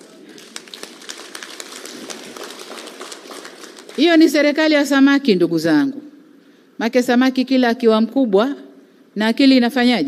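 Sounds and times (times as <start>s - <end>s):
audience clapping: 0.0s - 4.4s.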